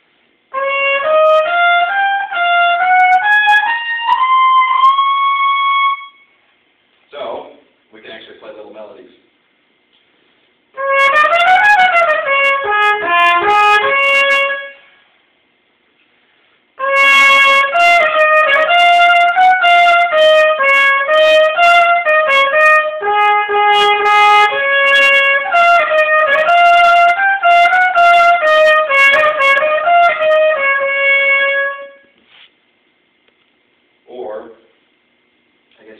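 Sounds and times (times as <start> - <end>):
trumpet melody: 0.5 - 6.4, 10.7 - 15.0, 16.8 - 32.2.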